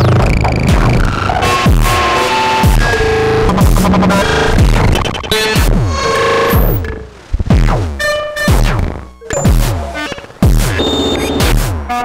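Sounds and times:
synthesizer drum hits with falling pitch: 0:02.6 - 0:05.7
short synthesizer bleeps: 0:02.8 - 0:05.5.

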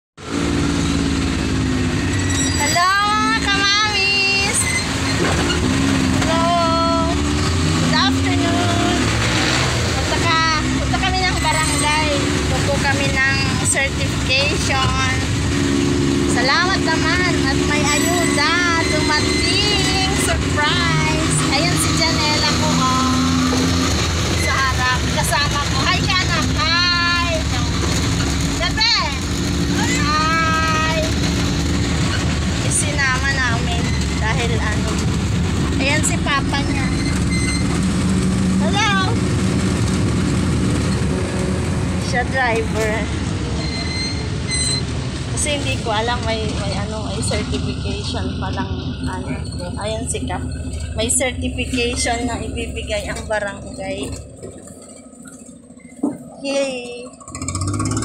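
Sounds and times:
motorcycle engine running: 0:00.2 - 0:58.0
people talking: 0:02.6 - 0:04.7, 0:06.2 - 0:15.3, 0:16.3 - 0:23.8, 0:24.4 - 0:28.0, 0:28.6 - 0:31.2, 0:32.6 - 0:35.1, 0:35.7 - 0:37.2, 0:38.6 - 0:39.2, 0:42.0 - 0:43.6, 0:45.3 - 0:54.2, 0:56.0 - 0:57.2.

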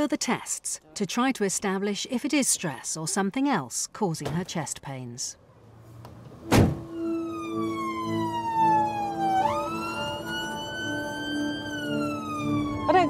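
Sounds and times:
ambulance siren wailing: 0:06.8 - 0:13.0.

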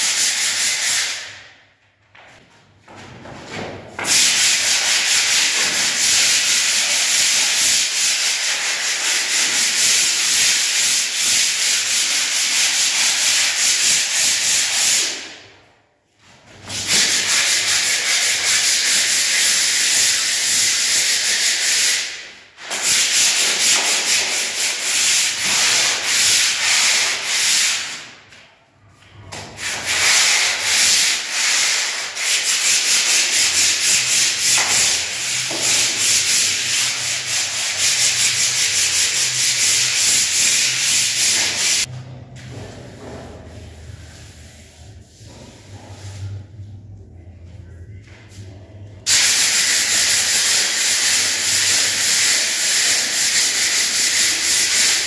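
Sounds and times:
hand sanding a rough wall: 0:00.0 - 0:01.3, 0:04.0 - 0:15.3, 0:16.6 - 0:28.0, 0:29.5 - 0:41.9, 0:49.1 - 0:55.0.

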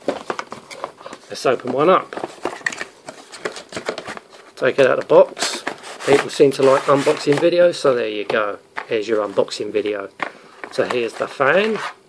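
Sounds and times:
cardboard box scraping and rustling: 0:05.4 - 0:07.4.

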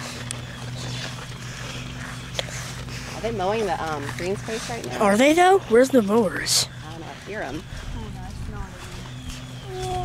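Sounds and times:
distant lawn mower engine: 0:00.0 - 0:10.0.

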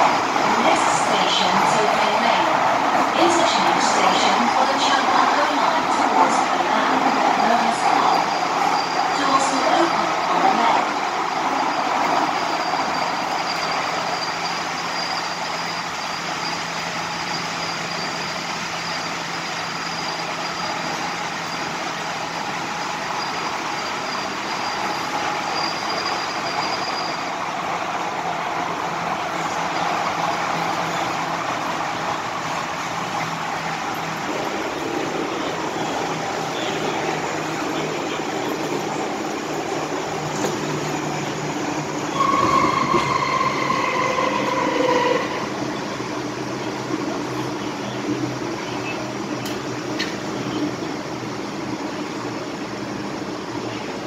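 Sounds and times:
train wheels rumbling: 0:00.0 - 0:54.0.

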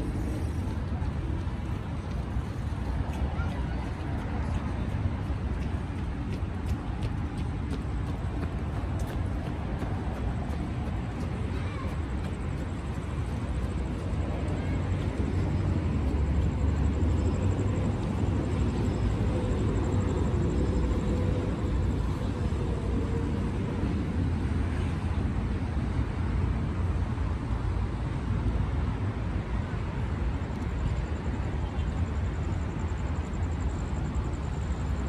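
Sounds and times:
faint voices: 0:00.0 - 0:05.7, 0:10.5 - 0:16.5
distant road traffic: 0:00.0 - 0:35.0.

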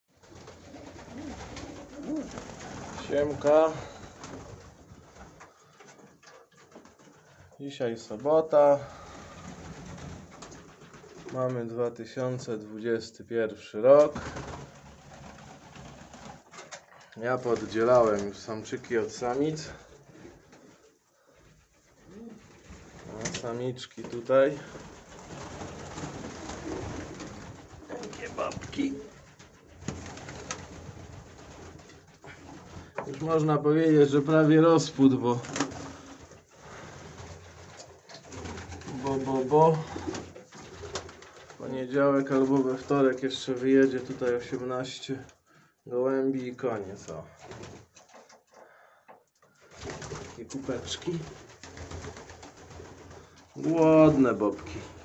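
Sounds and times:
pigeons cooing faintly: 0:00.1 - 0:07.6, 0:14.2 - 0:33.2, 0:34.1 - 0:44.3
faint pigeons cooing: 0:00.4 - 0:04.3, 0:19.6 - 0:23.4, 0:38.5 - 0:41.7.

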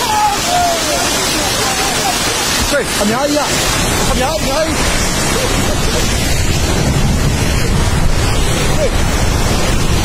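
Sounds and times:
landslide rushing: 0:00.0 - 0:10.0.

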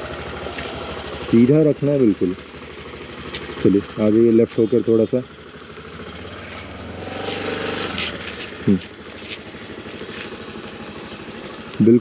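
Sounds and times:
scooter engine accelerating: 0:00.0 - 0:12.0.

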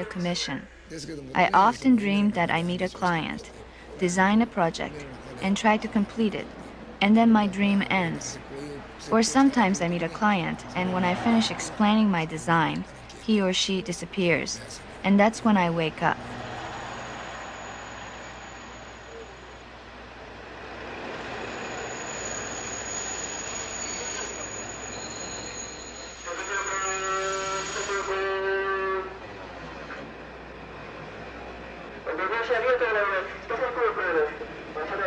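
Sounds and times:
train running noise with whine: 0:02.0 - 0:35.0.

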